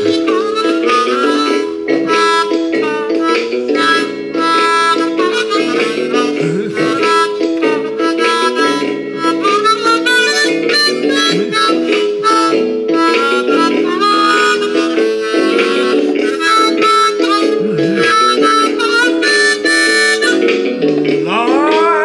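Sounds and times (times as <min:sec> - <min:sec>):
harmonica playing chords: 0:00.0 - 0:22.0.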